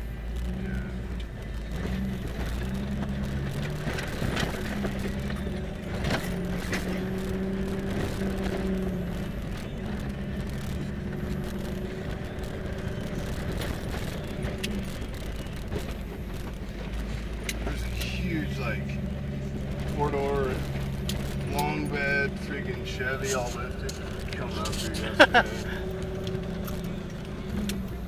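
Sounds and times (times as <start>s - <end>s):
knocks and rattles over bumps: 0.0s - 28.0s
vehicle engine at low revs: 0.0s - 28.0s.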